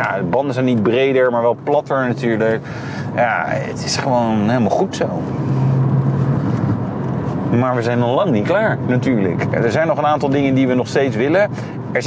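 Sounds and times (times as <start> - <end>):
car engine drone in cabin: 0.0 - 12.0
road and tyre noise: 0.0 - 12.0.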